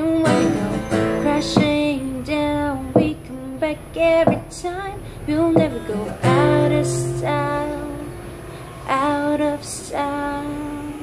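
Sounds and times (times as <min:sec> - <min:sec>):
woman singing solo: 0:00.0 - 0:11.0.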